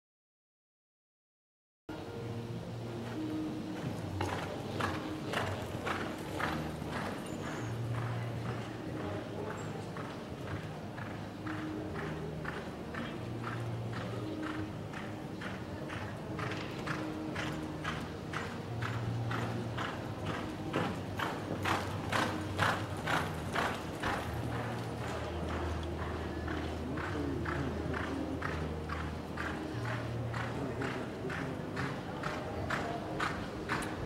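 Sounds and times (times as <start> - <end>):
horse hoofbeats on dirt: 3.8 - 34.0.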